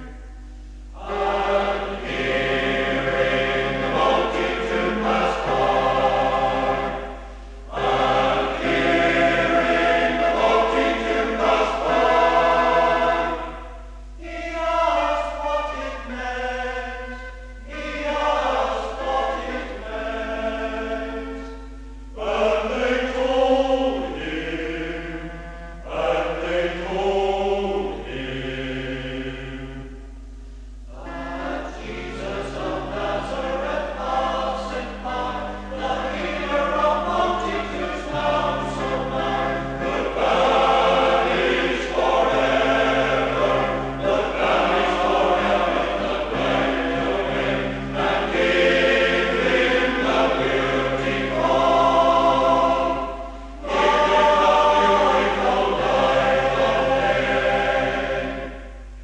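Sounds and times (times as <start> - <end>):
steady low hum: 0.0 - 59.0
male voice choir singing: 1.0 - 21.6, 22.2 - 29.9, 30.9 - 58.7.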